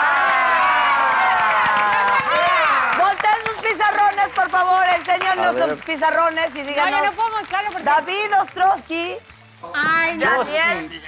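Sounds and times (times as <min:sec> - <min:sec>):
group of people shouting and cheering: 0:00.0 - 0:04.7.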